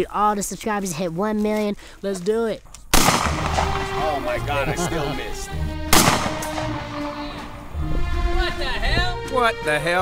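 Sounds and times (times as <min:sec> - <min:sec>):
gunshot with echo: 0:02.9 - 0:04.2, 0:05.9 - 0:07.4
background music: 0:03.0 - 0:10.0.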